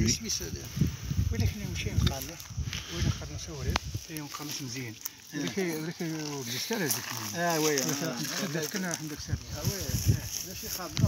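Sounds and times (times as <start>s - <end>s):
wind rumble on microphone: 0.0s - 4.2s, 9.1s - 11.0s
man speaking: 0.0s - 11.0s.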